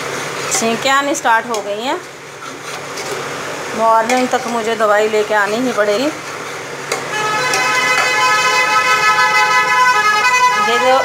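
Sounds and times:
steel utensils clinking: 0:03.9 - 0:06.1, 0:06.9 - 0:08.5
steady horn-like tone: 0:07.1 - 0:11.0.

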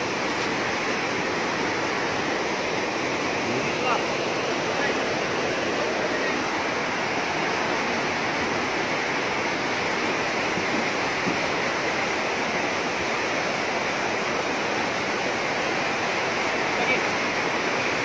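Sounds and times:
river rushing over rocks: 0:00.0 - 0:18.0.

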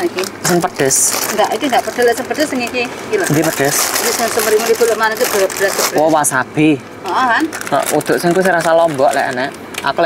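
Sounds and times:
people conversing: 0:00.0 - 0:10.0
plastic packaging rustling: 0:00.2 - 0:06.3, 0:07.3 - 0:10.0.

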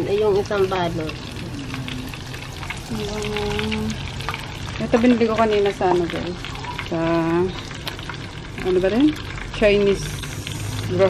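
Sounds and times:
chicken deep-frying in oil: 0:00.0 - 0:11.0.

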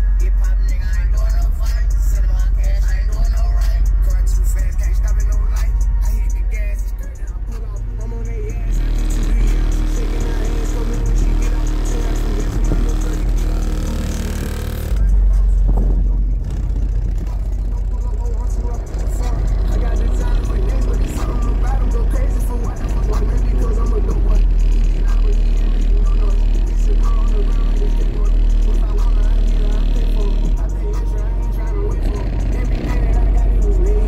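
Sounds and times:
music with vocals and deep bass: 0:00.0 - 0:34.0.

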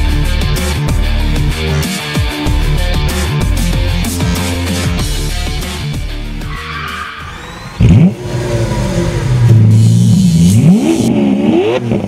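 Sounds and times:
car engine revving: 0:02.6 - 0:12.0.

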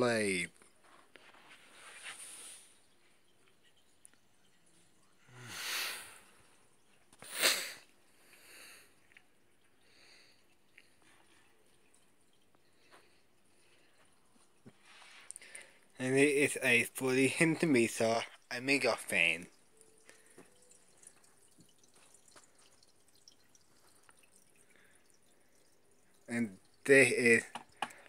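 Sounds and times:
person sniffing: 0:07.2 - 0:07.8.

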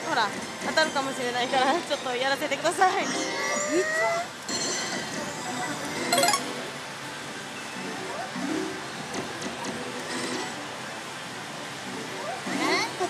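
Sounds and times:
slot machine music and effects: 0:06.2 - 0:06.8
din of gaming hall: 0:06.2 - 0:07.2.

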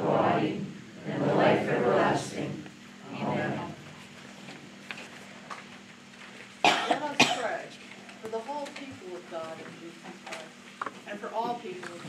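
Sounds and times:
person coughing: 0:06.6 - 0:07.6.

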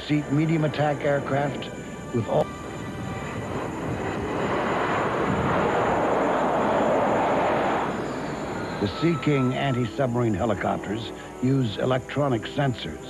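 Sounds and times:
jet aircraft flying past: 0:00.0 - 0:13.0.

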